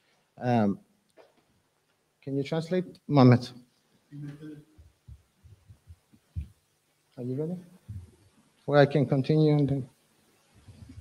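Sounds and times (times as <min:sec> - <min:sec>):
faint low thumps: 0:04.2 - 0:06.7, 0:07.8 - 0:08.3.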